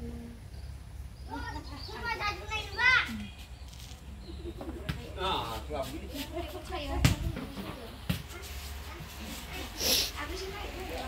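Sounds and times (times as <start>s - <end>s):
children calling and chattering: 1.1s - 11.0s.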